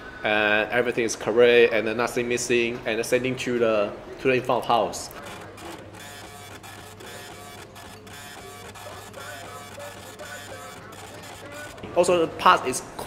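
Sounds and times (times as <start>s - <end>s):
ticket printer chattering: 4.8s - 12.4s.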